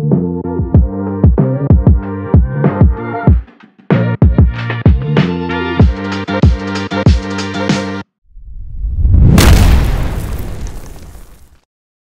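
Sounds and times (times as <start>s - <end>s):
cinematic boom with low rumble: 8.4s - 11.2s.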